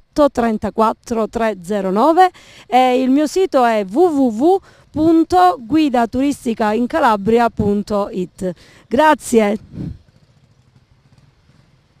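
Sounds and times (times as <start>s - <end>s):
motor scooter engine hum: 0.4s - 12.0s.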